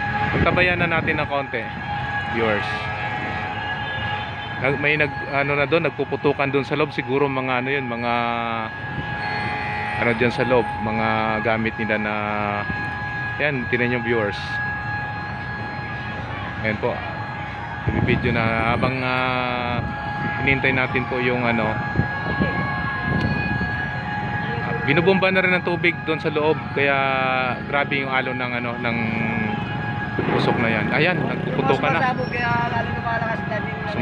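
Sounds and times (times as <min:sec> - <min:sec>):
high whine: 0:00.0 - 0:34.0
engine rumbling: 0:25.9 - 0:34.0.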